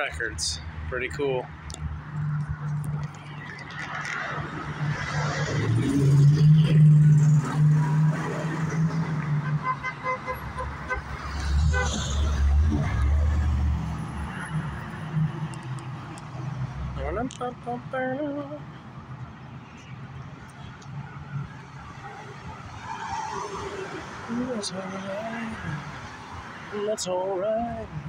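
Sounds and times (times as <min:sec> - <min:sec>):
vehicles passing: 0:00.0 - 0:28.0.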